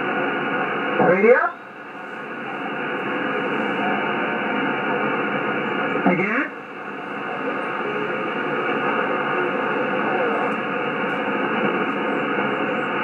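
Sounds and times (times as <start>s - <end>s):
faint jumbled radio voices: 0.0s - 13.0s
radio band noise hiss: 0.0s - 13.0s.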